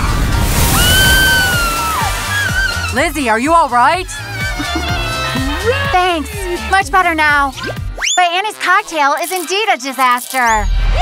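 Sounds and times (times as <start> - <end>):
background music: 0.0 - 11.0
high whistling tone: 7.6 - 8.3.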